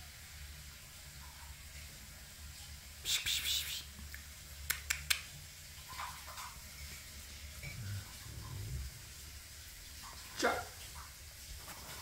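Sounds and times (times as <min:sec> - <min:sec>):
small sharp clicks: 0:04.1 - 0:05.3
faint low rumble: 0:07.6 - 0:09.4.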